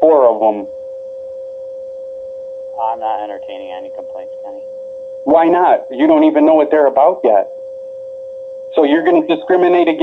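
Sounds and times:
voice on recorded phone call: 0.0 - 0.7, 2.7 - 4.6, 5.2 - 7.5, 8.7 - 10.0
steady electronic tone: 0.0 - 10.0.

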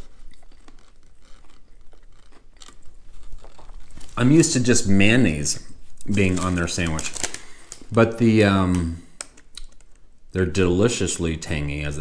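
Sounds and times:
person chewing crunchy food: 0.0 - 4.2.

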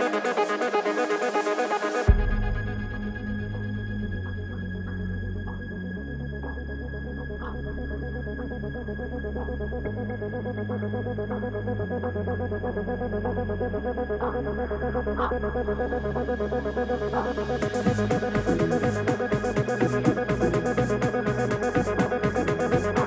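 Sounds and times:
held bass synth notes: 2.1 - 23.0.

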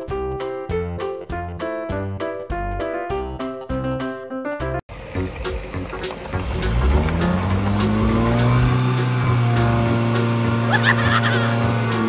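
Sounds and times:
piano-like music: 0.0 - 12.0
car engine drone: 4.9 - 12.0.

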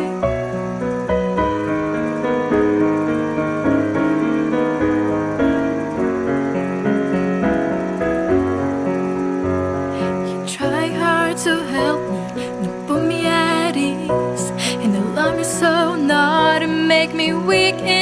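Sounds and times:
slow piano chords: 0.0 - 18.0.

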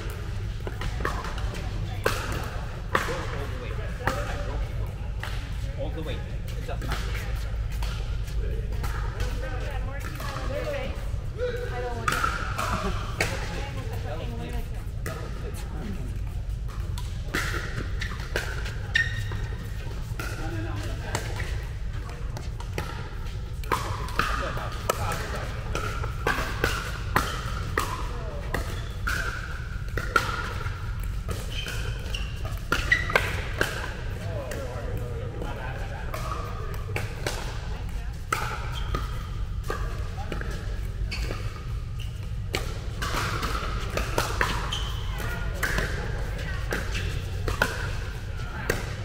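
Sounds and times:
steady low hum: 0.0 - 49.0
paddles striking plastic balls: 16.1 - 35.5, 36.1 - 49.0.

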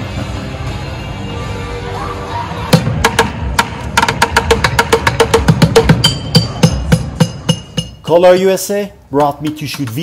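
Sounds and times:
drumsticks beating plastic buckets: 2.8 - 8.0, 9.2 - 10.0
ringing metallic tones: 5.8 - 8.1.

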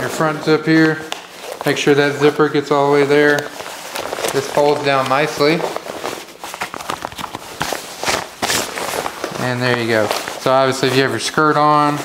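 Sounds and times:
nylon fabric rustling: 0.0 - 12.0.

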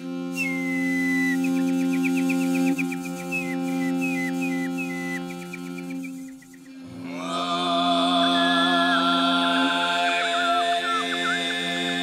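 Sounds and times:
overtone singing: 0.7 - 12.0.

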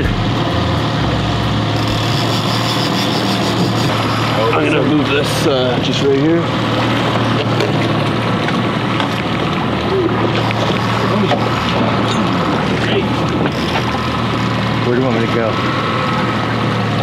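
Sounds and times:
outboard motor droning: 0.0 - 17.0
water noise: 0.0 - 17.0
wind: 0.0 - 17.0.

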